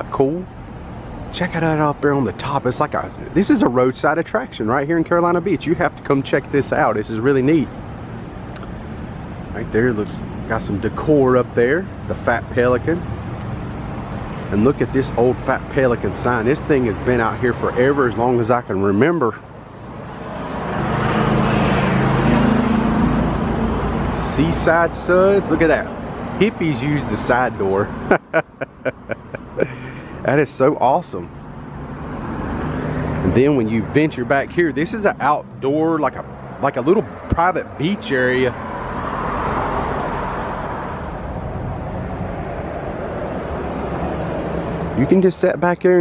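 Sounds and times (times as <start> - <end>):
road traffic rushing past: 0.0 - 46.0
vehicle engine driving past: 20.2 - 24.2.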